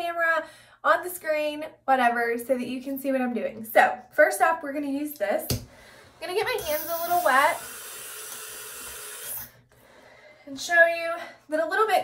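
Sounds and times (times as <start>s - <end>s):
tap water running from faucet: 6.4s - 9.6s.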